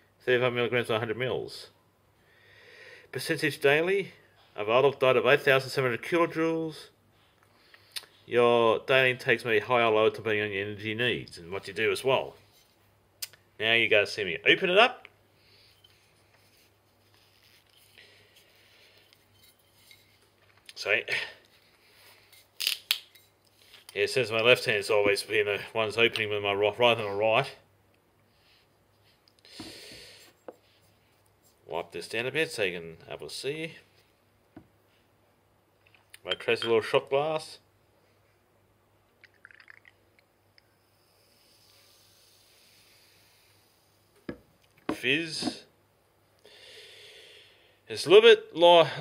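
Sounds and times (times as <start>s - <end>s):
drink pouring trickle: 39.2s - 40.2s.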